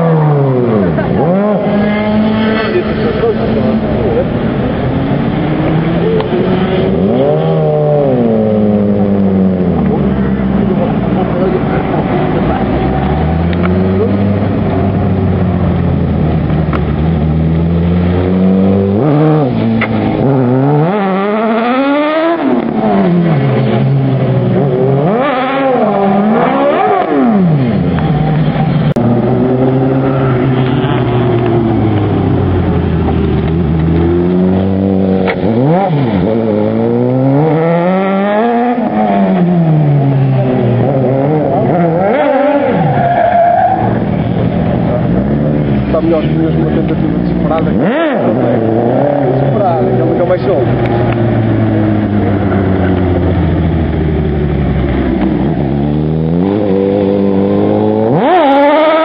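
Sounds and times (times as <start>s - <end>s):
car engine revving: 0.0s - 59.0s.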